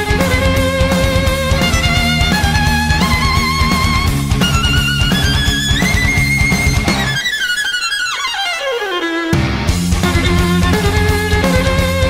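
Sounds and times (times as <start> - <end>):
bass: 0.0 - 7.2, 9.3 - 12.0
drums: 0.0 - 12.0
electric guitar: 0.0 - 12.0
violin: 0.0 - 12.0.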